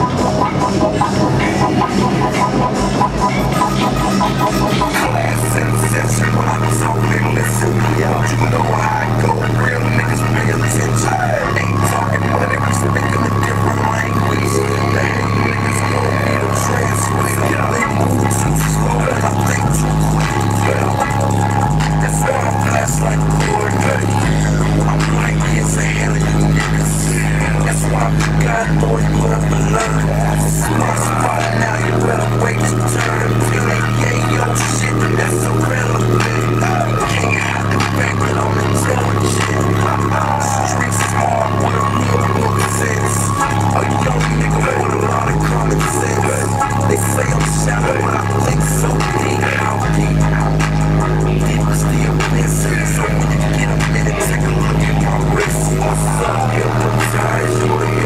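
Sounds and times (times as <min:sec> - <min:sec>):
bass-heavy electronic music: 0:00.0 - 0:58.0.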